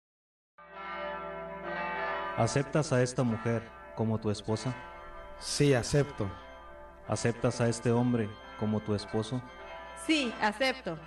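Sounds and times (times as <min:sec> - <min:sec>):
church bells ringing: 0:00.6 - 0:11.0.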